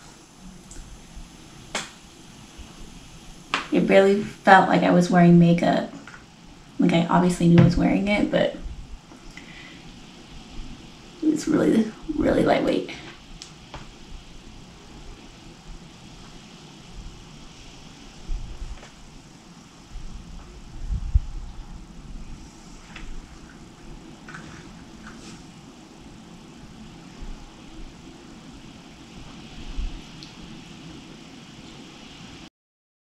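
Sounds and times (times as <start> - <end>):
soft low thumps: 7.4 - 9.0
faint ticks: 30.0 - 30.4.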